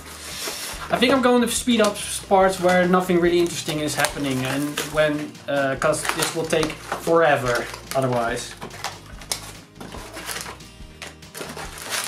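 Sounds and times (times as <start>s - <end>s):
cardboard and plastic wrap crackling: 0.0s - 12.0s.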